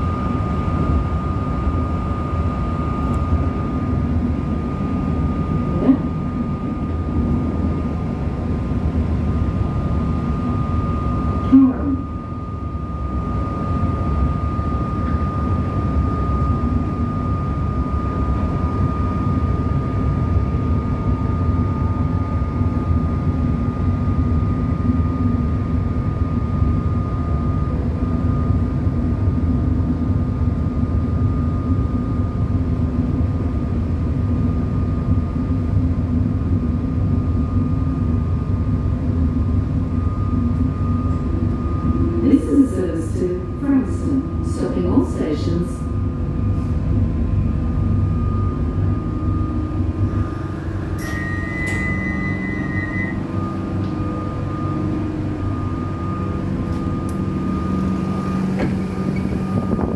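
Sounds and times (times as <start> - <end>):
train carriage rumble: 0.0 - 59.9
thin high whine: 39.7 - 59.9.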